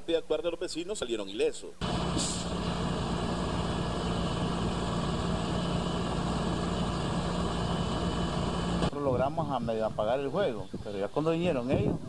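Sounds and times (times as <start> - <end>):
engine idling: 1.8 - 8.9.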